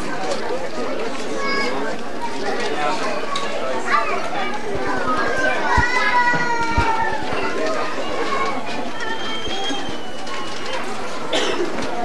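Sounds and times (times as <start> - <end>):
children talking and calling: 0.0 - 12.0.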